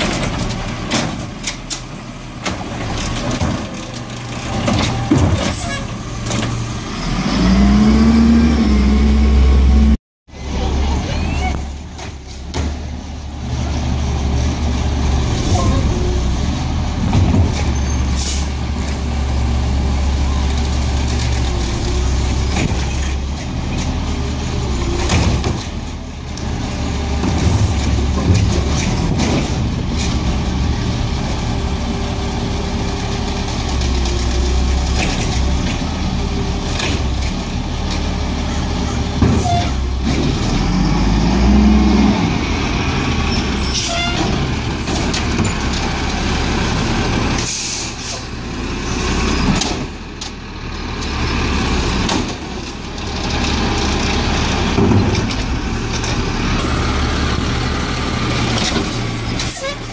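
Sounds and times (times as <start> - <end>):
air brakes hissing: 47.4 - 48.3.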